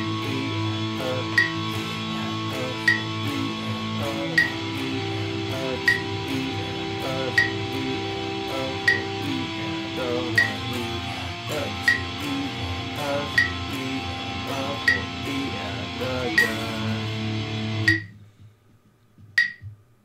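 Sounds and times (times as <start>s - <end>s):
electric guitar power chords: 0.0s - 18.2s
metronome click: 1.0s - 1.9s, 2.6s - 3.5s, 4.2s - 4.8s, 5.7s - 6.2s, 7.2s - 7.7s, 8.5s - 9.3s, 10.2s - 10.8s, 11.6s - 12.3s, 13.2s - 13.8s, 14.8s - 15.5s, 16.1s - 17.1s, 17.8s - 18.1s, 19.4s - 19.7s.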